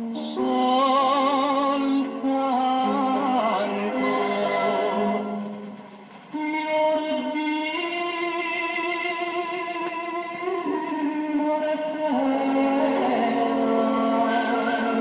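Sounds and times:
popular song on vinyl: 0:00.0 - 0:15.0.

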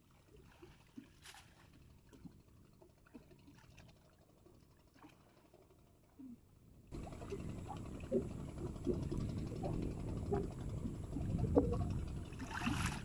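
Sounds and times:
water sloshing and splashing: 0:00.0 - 0:06.2, 0:06.9 - 0:13.0.

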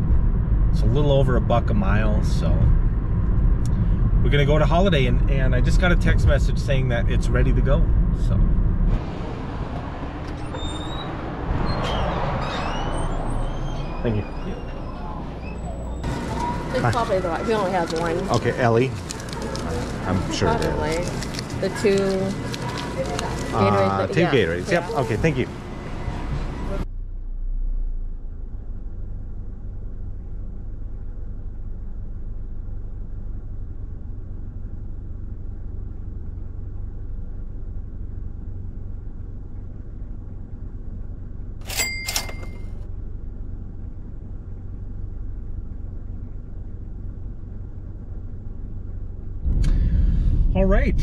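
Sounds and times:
car road and engine rumble: 0:00.0 - 0:51.0.

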